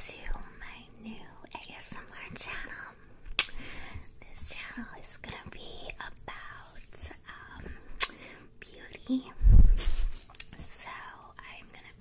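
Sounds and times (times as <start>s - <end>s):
woman whispering: 0.0s - 3.1s, 4.2s - 7.7s, 8.6s - 9.4s, 10.5s - 12.0s.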